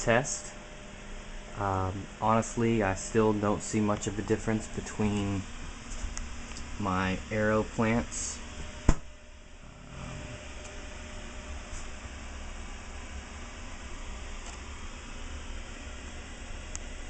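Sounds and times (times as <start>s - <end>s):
machine hum and hiss: 0.0s - 17.0s.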